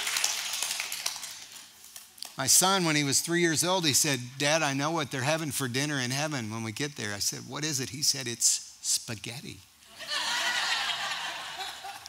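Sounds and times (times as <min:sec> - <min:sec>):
audience applause: 0:00.0 - 0:01.5.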